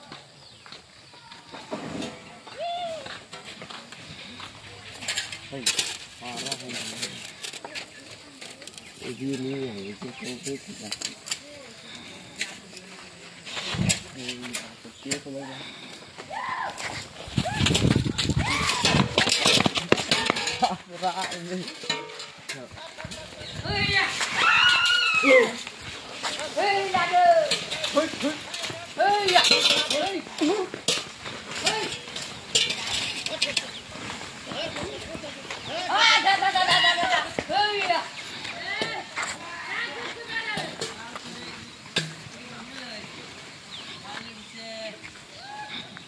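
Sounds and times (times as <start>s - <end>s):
people talking and calling: 0.0s - 46.0s
people shouting repeated calls: 35.7s - 40.7s.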